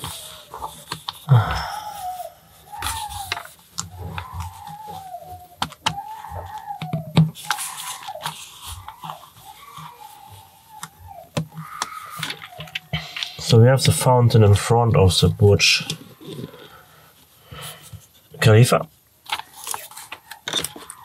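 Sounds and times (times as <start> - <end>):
person humming a wordless tune: 1.3 - 7.0.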